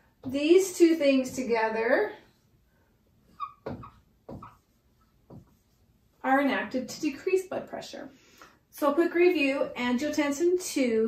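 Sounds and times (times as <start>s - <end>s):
marker squeaking on whiteboard: 3.2s - 5.8s
scratchy marker stroke: 3.3s - 5.9s.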